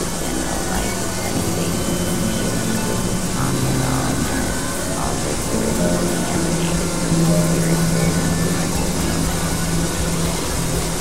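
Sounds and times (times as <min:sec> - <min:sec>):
dense hiss: 0:00.0 - 0:11.0
low synthesizer drone: 0:00.0 - 0:11.0
swooping synth glides: 0:00.0 - 0:11.0.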